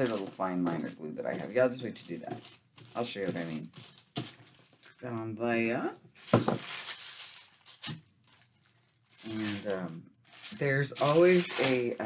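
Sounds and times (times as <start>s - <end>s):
plastic sheeting rustling: 0.0s - 5.0s, 6.2s - 12.0s.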